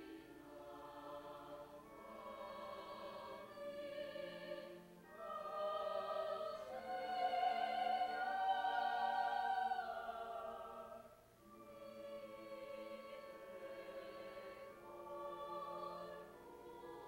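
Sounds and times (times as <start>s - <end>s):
cello: 0.0s - 17.0s
choir singing held chords: 0.0s - 17.0s.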